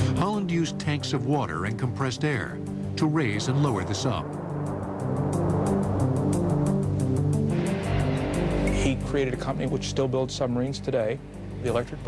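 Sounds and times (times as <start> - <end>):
documentary background music: 0.0 - 12.0
rushing transition effect: 3.0 - 9.4.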